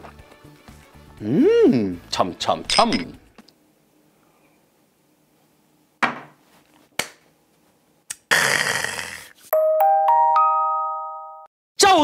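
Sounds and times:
shot glass clinking on table: 2.7 - 3.2.

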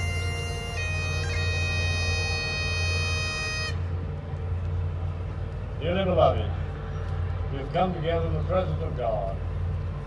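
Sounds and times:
bagpipes holding a note: 0.0 - 4.0
steady low rumble: 0.0 - 10.0.

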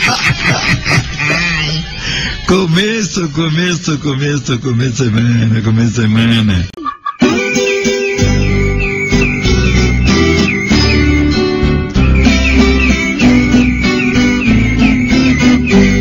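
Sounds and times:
ten-string guitar plucked tune: 7.2 - 16.0.

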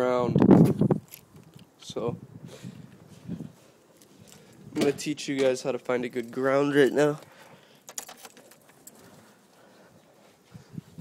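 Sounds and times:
handling rustles: 3.0 - 10.8.

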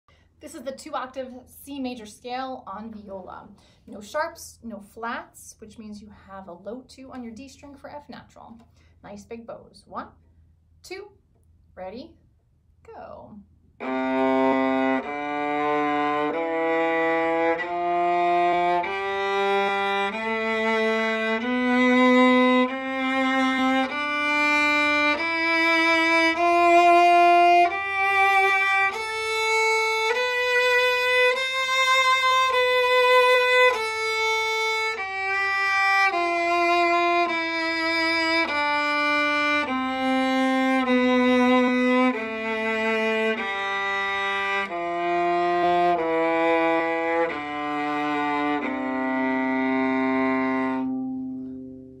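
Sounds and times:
viola playing a scale: 13.8 - 52.0.

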